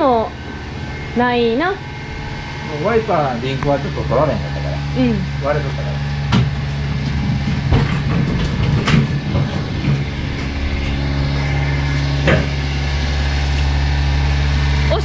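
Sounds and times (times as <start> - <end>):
low mechanical drone: 0.0 - 15.0
sharp knocks: 6.3 - 12.7.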